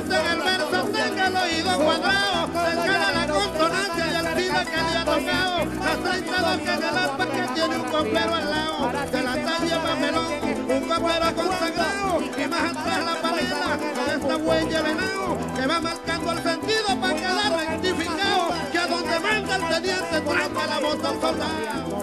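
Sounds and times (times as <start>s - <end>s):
harp playing quick runs: 0.0s - 22.0s
pulsing bass rhythm: 0.0s - 22.0s.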